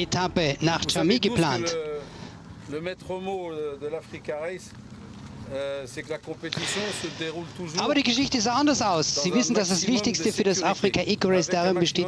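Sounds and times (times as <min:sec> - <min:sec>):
man speaking: 0:00.0 - 0:02.1, 0:05.5 - 0:12.0.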